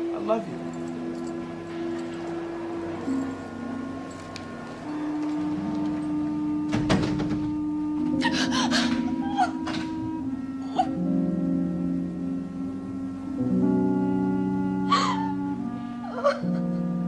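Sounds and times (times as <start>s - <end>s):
sustained chord music: 0.0s - 17.0s
woman breathing sounds: 8.2s - 9.1s, 14.9s - 15.4s.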